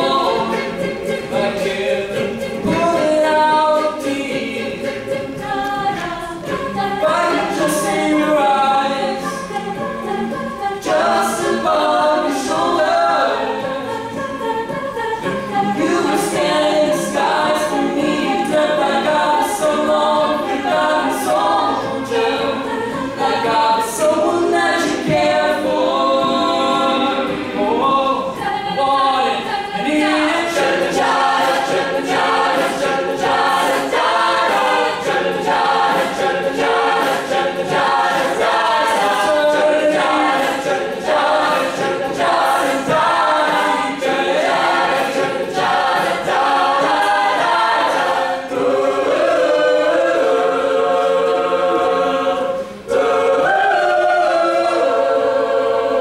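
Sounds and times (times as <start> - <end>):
group singing backing parts: 0.0 - 56.0.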